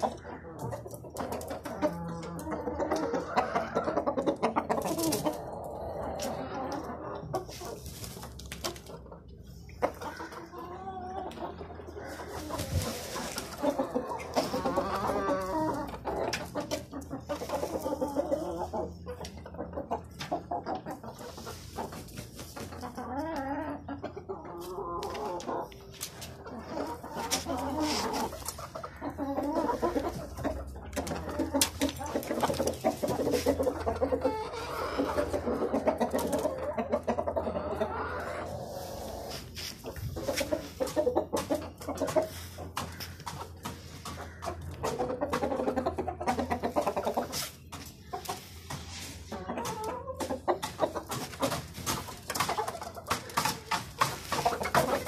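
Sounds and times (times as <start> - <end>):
chickens clucking and calling: 0.0 - 55.0.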